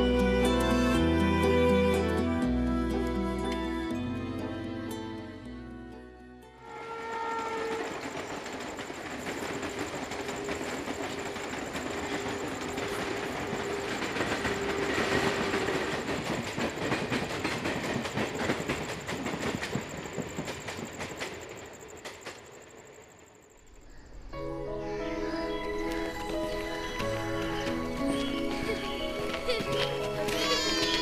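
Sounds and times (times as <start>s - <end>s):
electric train passing: 0.0s - 31.0s
wheels clattering over rail joints: 7.1s - 22.6s.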